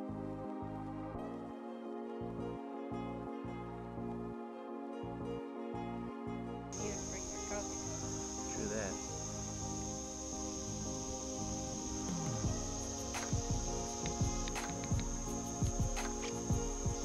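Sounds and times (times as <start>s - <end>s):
background music: 0.0s - 17.0s
insects droning: 6.7s - 17.0s.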